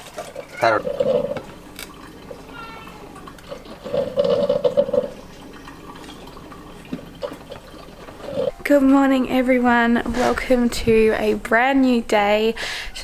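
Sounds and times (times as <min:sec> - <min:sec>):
liquid gurgling from carton: 0:00.2 - 0:08.6.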